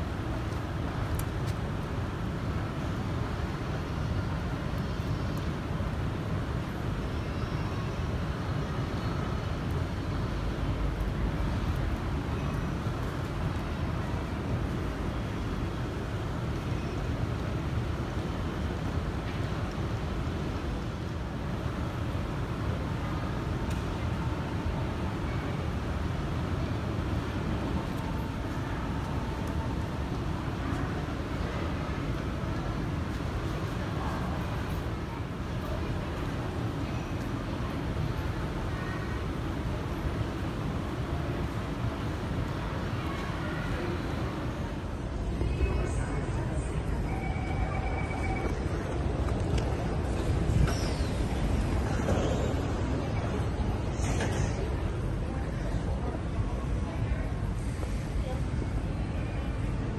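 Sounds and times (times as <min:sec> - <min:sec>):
underground station rumble and hiss: 0:00.0 - 0:59.9
faint voices: 0:22.0 - 0:59.9.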